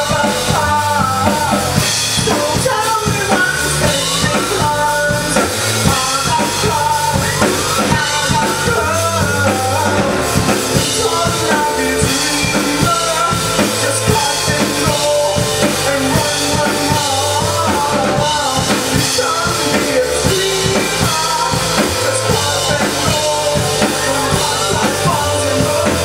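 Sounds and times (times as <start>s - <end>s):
live rock band playing: 0.0s - 26.0s.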